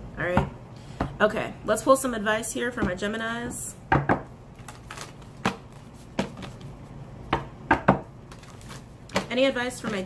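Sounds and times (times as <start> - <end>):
cards being shuffled: 8.3 - 10.0.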